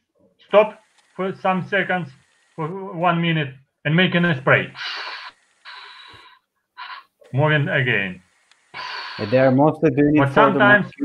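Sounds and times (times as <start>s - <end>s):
man imitating sprayer hiss: 8.8s - 9.5s.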